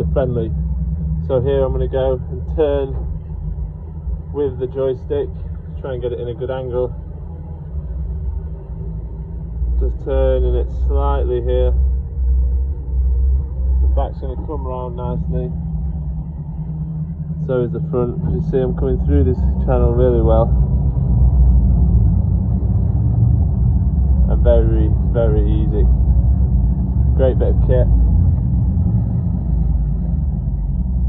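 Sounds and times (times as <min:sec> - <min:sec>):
outboard engines rumbling: 0:00.0 - 0:31.0.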